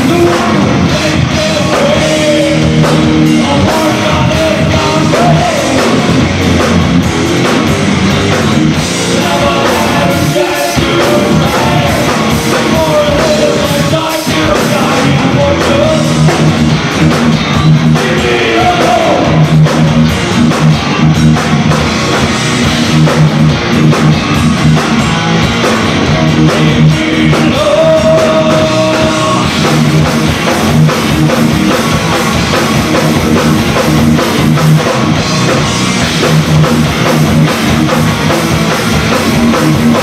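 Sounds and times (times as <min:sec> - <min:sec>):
live rock band playing: 0:00.0 - 0:40.0.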